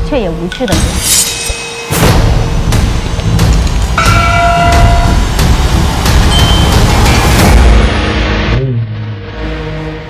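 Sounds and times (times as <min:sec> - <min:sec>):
sharp hits: 0:00.6 - 0:08.2.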